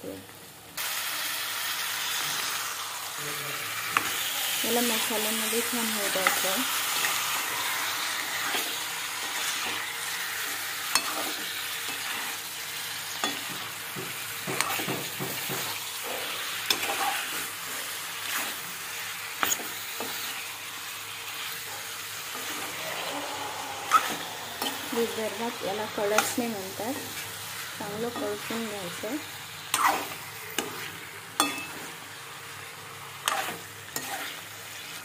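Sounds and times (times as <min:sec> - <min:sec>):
chicken sizzling in hot oil: 0:00.3 - 0:35.0
metal spoon scraping pan: 0:10.8 - 0:12.3, 0:29.7 - 0:31.9, 0:33.2 - 0:34.9.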